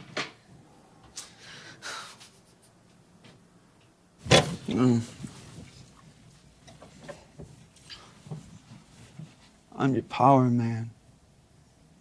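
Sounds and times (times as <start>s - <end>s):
faint rustle: 4.4s - 9.8s.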